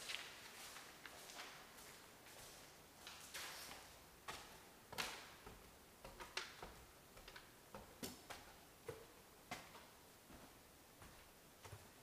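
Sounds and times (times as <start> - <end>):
footsteps on wooden stairs: 3.7 - 12.0.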